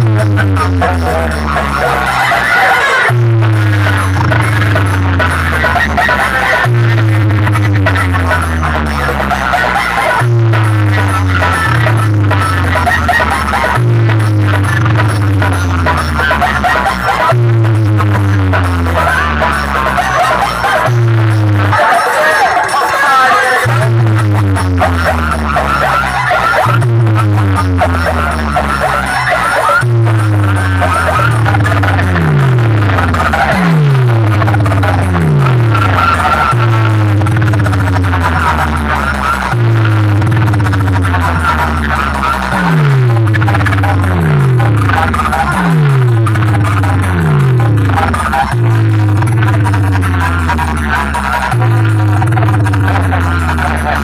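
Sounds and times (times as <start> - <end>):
loud electronic dance music: 0.0 - 54.0.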